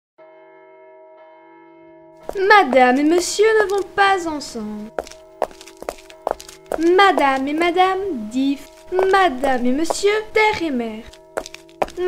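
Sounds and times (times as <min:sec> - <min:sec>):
church bell ringing: 0:00.2 - 0:05.4, 0:06.6 - 0:12.0.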